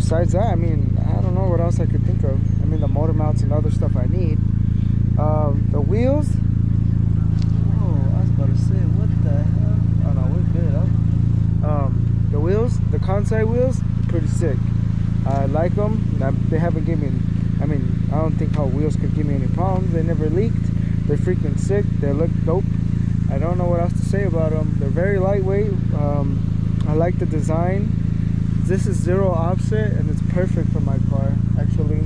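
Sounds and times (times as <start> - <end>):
man talking: 0.0 - 6.5, 7.6 - 11.0, 11.6 - 32.0
car engine idling: 0.0 - 32.0.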